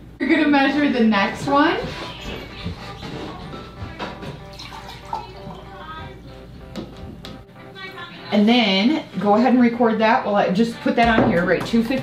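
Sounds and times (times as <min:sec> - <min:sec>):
background music: 0:01.2 - 0:12.0
water pouring into glass: 0:04.5 - 0:05.7.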